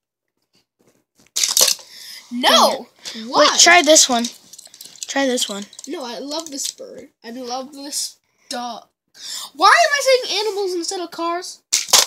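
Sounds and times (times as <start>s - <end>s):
toy car plastic track clatter: 1.4s - 1.9s, 3.6s - 6.8s, 11.7s - 12.0s.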